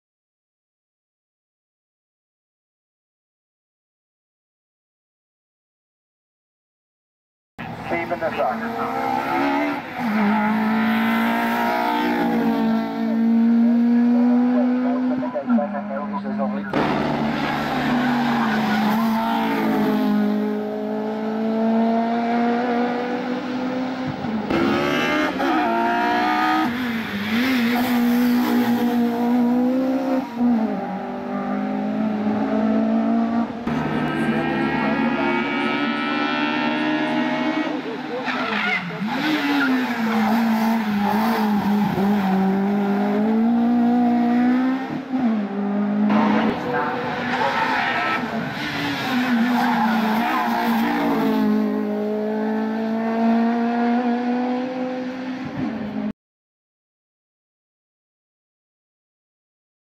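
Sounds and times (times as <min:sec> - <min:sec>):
race car engine revving: 0:07.6 - 0:55.9.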